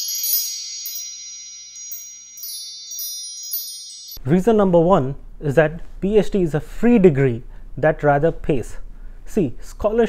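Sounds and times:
wind chimes ringing: 0.0 - 4.2.

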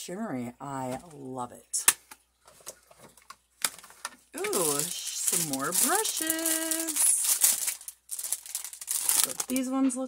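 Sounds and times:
plastic packaging crinkling: 2.5 - 10.0.

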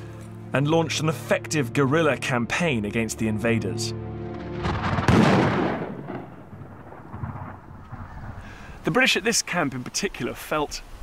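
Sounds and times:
musket shot: 4.6 - 7.6.

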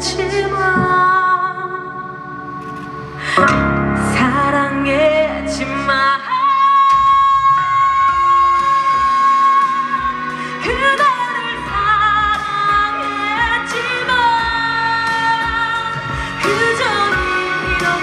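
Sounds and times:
woman singing a ballad: 0.0 - 2.6, 3.2 - 18.0
backing music: 0.0 - 18.0.

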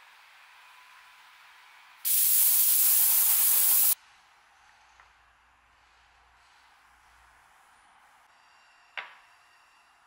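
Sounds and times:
loud steady hiss: 2.0 - 4.0.

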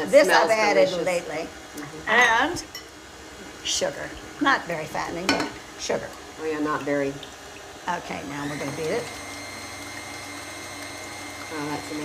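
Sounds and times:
stand mixer motor whine: 8.0 - 12.0.

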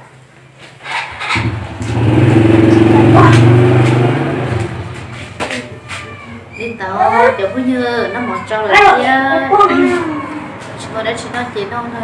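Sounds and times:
engine running loudly: 1.4 - 5.0.

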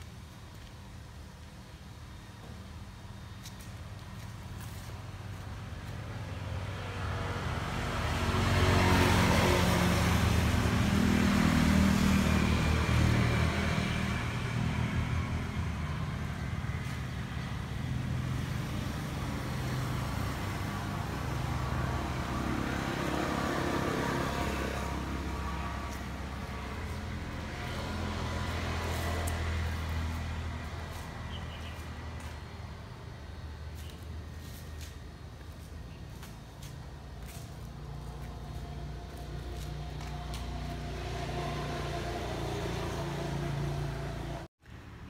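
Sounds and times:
engine humming: 0.0 - 44.8.

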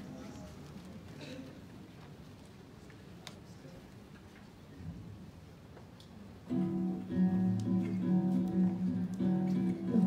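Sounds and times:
acoustic guitar strumming chords: 6.5 - 10.0.

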